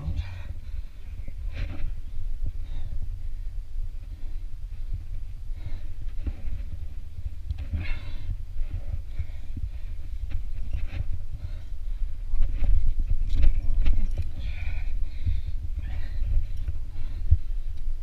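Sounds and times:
climber breathing hard: 0:00.0 - 0:18.0
low rumble: 0:00.0 - 0:18.0.

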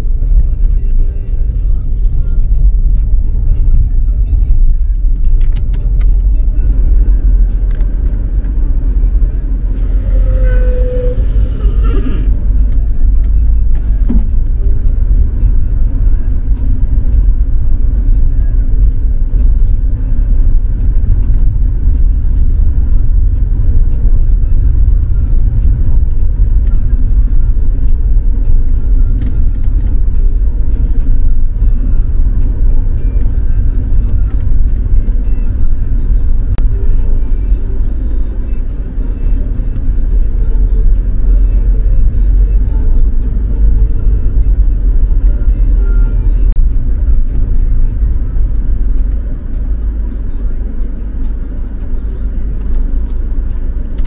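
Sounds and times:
car rumbling on dirt road: 0:00.0 - 0:54.0.

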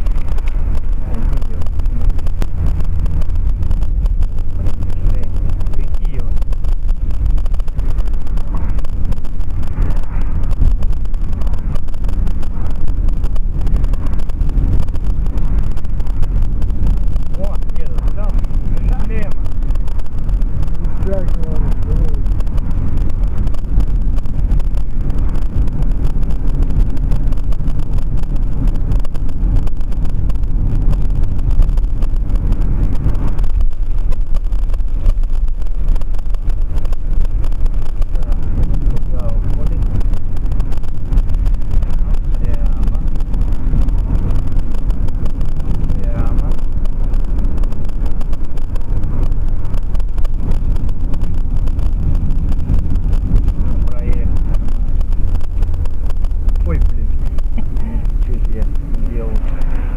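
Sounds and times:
road and engine rumble: 0:00.0 - 0:59.9
wind noise: 0:00.0 - 0:59.9.

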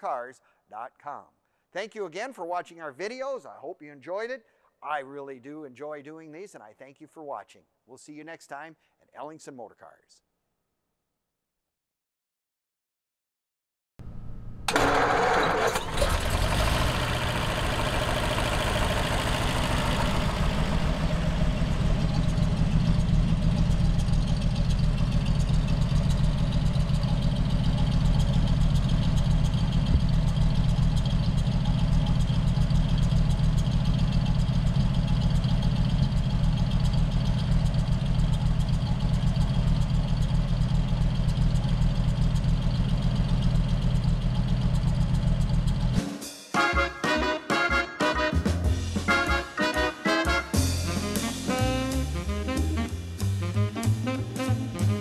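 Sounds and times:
car engine idling: 0:14.0 - 0:46.0.

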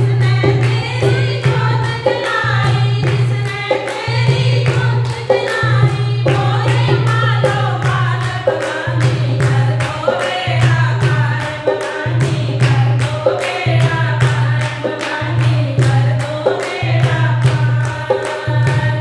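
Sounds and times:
dholak drum: 0:00.0 - 0:19.0
women singing in unison: 0:00.0 - 0:19.0
hand claps: 0:02.2 - 0:19.0.

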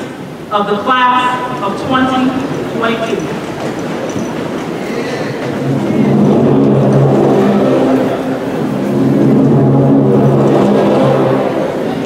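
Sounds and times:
audience rising rustle: 0:01.6 - 0:12.0
processional music chords: 0:05.4 - 0:12.0.

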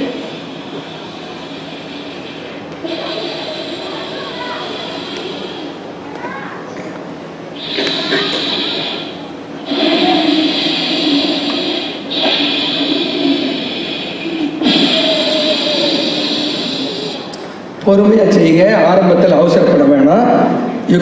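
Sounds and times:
deep breathing: 0:00.0 - 0:06.9, 0:07.5 - 0:17.8.

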